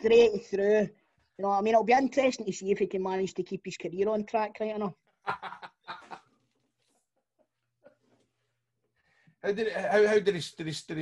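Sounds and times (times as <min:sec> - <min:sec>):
men laughing: 0:05.3 - 0:06.2.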